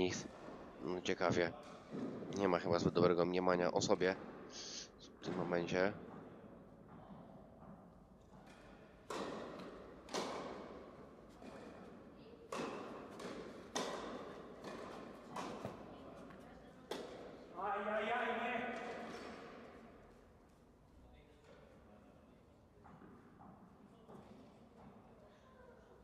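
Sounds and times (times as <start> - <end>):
rackets hitting tennis ball: 0.0 - 3.1, 5.3 - 17.6, 18.6 - 20.2.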